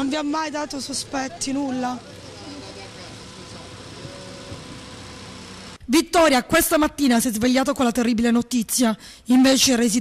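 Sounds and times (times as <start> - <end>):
woman narrating: 0.0 - 2.0, 5.9 - 10.0
street background noise: 0.0 - 10.0.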